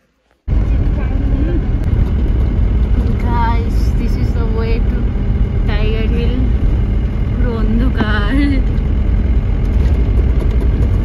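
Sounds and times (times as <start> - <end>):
car engine and road noise: 0.3 - 11.0.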